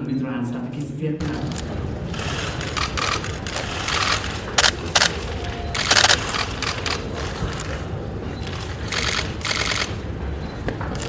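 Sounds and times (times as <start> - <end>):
camera shutters firing: 1.2 - 7.8, 8.4 - 10.0.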